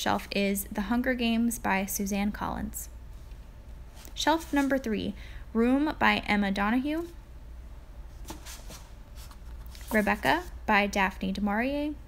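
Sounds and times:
books rustling on a shelf: 3.9 - 4.9, 8.1 - 10.6.

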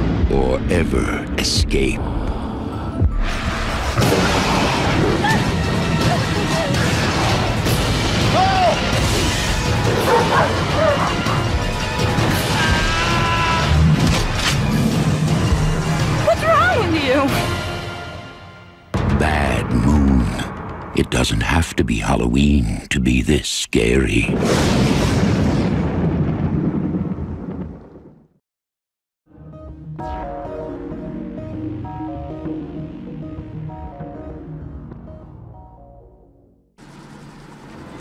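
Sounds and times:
dramatic orchestral music: 2.9 - 21.0
dog barking: 9.9 - 11.4.

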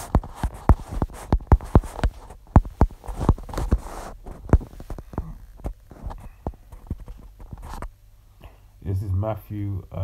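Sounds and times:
fingertips tapping touchscreen: 0.0 - 7.9.

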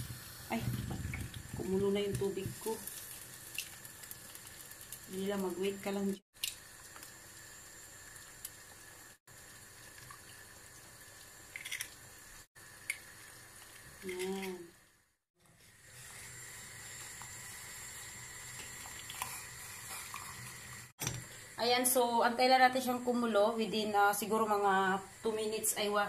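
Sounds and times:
water simmering hiss: 0.0 - 26.0.

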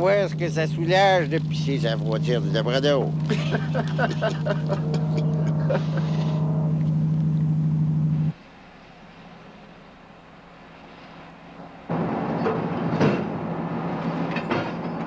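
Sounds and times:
men talking: 0.0 - 6.4
vehicle engine drone: 0.0 - 15.0.

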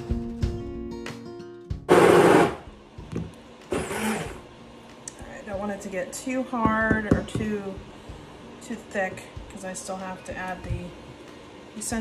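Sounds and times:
stick blender pulses: 1.9 - 2.7, 3.7 - 4.4.

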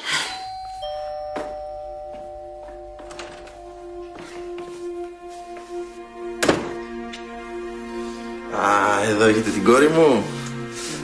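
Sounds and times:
doorbell chime ringing: 0.0 - 4.8.

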